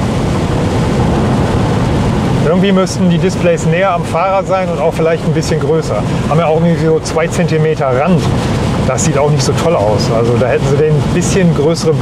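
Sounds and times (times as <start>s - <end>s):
road and wind noise in car: 0.0s - 12.0s
tyres on wet road: 0.0s - 12.0s.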